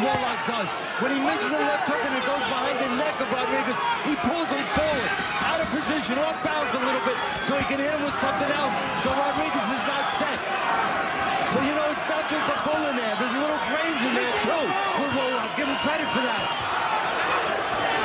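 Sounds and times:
man talking: 0.0s - 10.4s, 11.5s - 16.5s
arena crowd noise: 0.0s - 18.0s.

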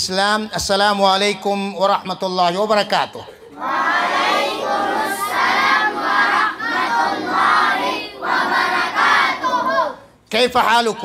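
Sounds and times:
children calling out together: 3.5s - 10.2s.

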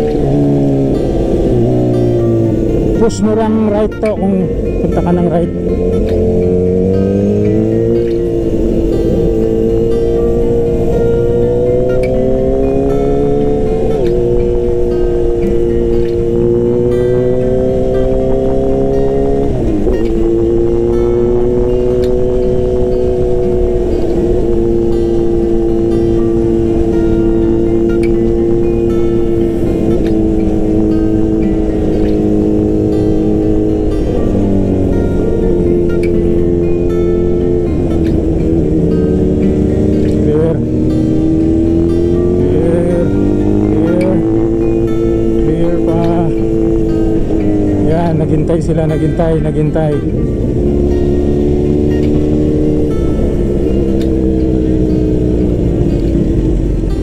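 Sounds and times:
low wind rumble: 0.0s - 57.0s
motorcycle engine running: 0.0s - 57.0s.

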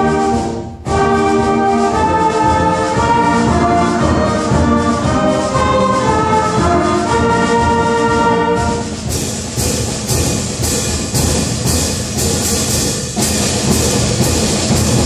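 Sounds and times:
concert band playing: 0.0s - 15.0s
sharp percussion strikes: 0.0s - 15.0s.

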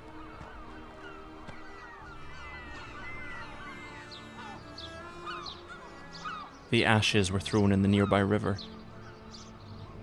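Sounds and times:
gulls crying: 0.0s - 10.0s
soft background music: 0.0s - 10.0s.

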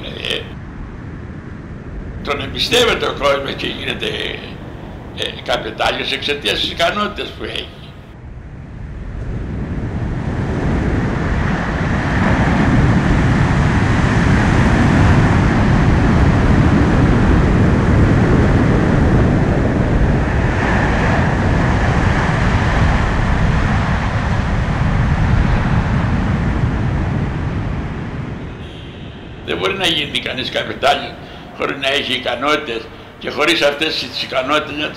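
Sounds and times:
sea surf: 0.0s - 1.3s, 2.1s - 8.0s, 9.4s - 34.9s
wind: 0.0s - 34.9s.

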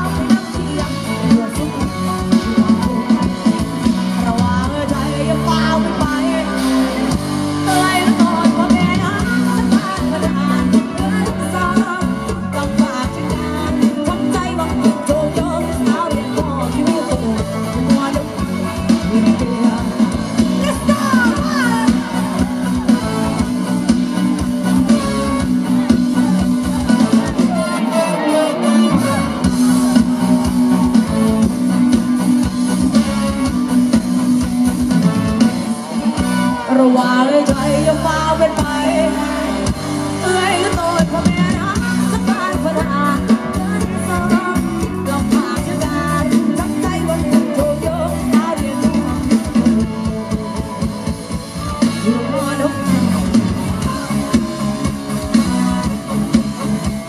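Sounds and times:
woman singing into a microphone: 0.0s - 22.8s, 36.4s - 57.0s
bass line: 0.0s - 57.0s
guitar: 0.0s - 57.0s
live band playing: 0.0s - 57.0s.

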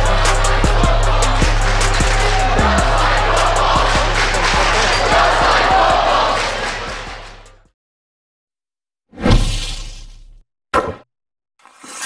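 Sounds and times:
background music: 0.0s - 7.7s
whoosh and hit sound effect: 9.2s - 10.2s.

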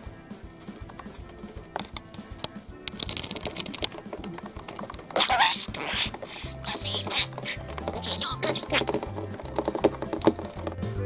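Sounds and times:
laptop keys clicking: 0.7s - 10.7s.

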